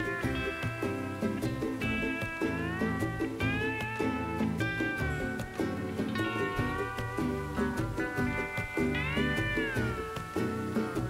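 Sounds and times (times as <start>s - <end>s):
plucked strings: 0.0s - 11.0s
sliding lead melody: 0.0s - 11.0s.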